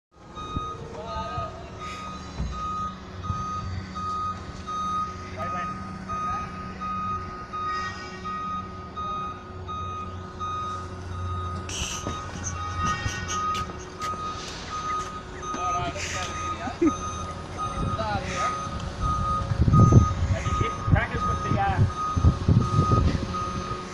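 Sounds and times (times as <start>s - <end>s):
forklift engine running: 0.2s - 23.9s
forklift reversing alarm beeps: 0.2s - 23.9s.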